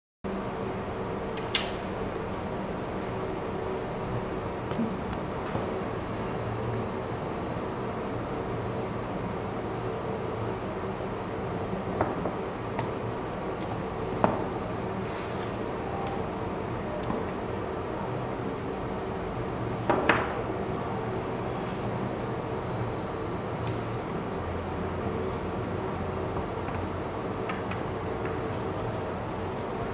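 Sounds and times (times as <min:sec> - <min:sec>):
fan hum: 0:00.3 - 0:29.9.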